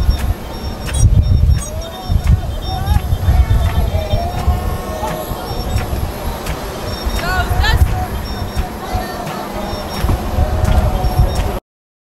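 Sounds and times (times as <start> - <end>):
rising chirps: 0.0 - 11.5
cars idling: 0.0 - 11.6
clicks: 0.0 - 11.6
faint voices: 0.0 - 11.6.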